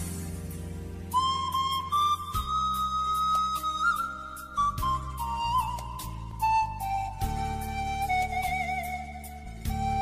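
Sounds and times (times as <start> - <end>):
steady bass accompaniment: 0.0 - 10.0
pan flute melody: 1.1 - 10.0.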